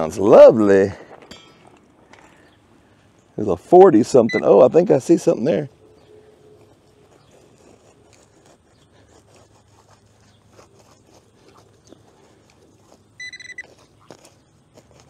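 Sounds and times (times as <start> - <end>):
probe scratching through wood chips: 4.0 - 15.0
metal detector beep: 4.2 - 4.6, 13.2 - 13.7.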